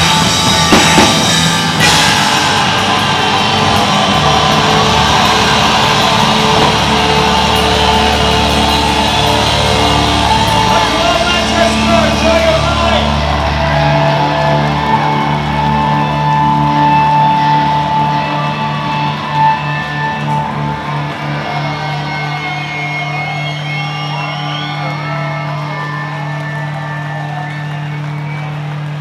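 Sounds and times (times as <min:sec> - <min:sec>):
live rock band chord ringing: 0:00.0 - 0:21.6
crowd cheering and whistling: 0:00.0 - 0:29.0
drum hit: 0:00.1 - 0:09.2.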